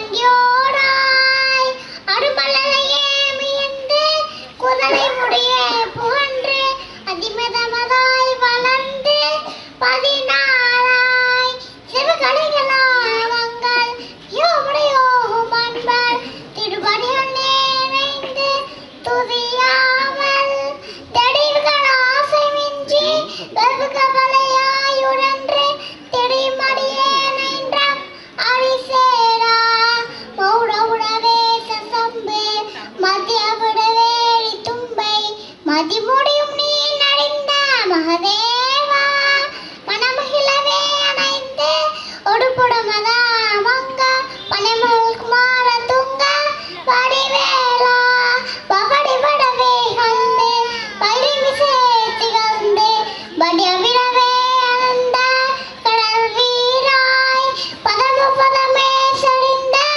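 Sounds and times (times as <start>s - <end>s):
children singing into microphones: 0.0s - 59.9s.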